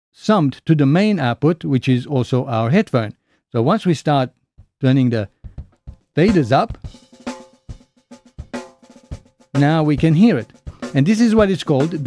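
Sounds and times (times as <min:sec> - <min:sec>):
acoustic drum kit playing: 0:04.6 - 0:12.0.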